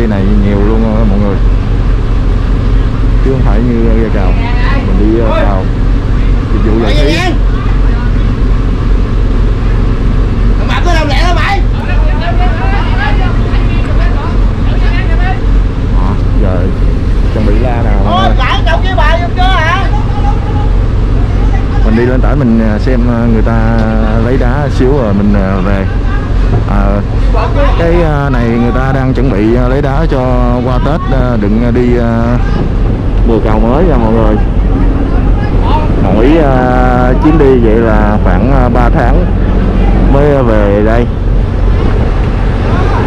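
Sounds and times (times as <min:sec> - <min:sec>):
boat diesel engine running: 0:00.0 - 0:43.0
men calling out: 0:04.3 - 0:08.4, 0:10.7 - 0:15.6, 0:17.4 - 0:22.3, 0:25.4 - 0:28.9, 0:33.9 - 0:40.4.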